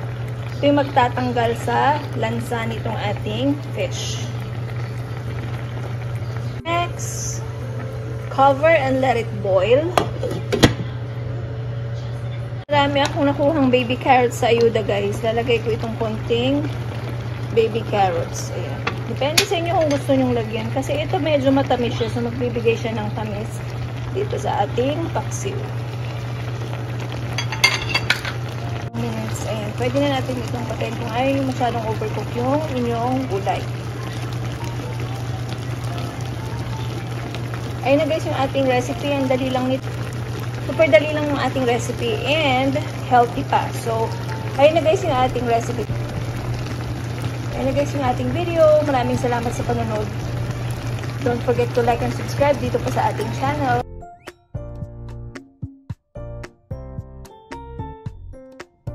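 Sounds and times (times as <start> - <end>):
broth bubbling in a pan: 0.0 - 11.2, 12.7 - 53.8
glass lid clinking on pan: 27.4 - 28.4.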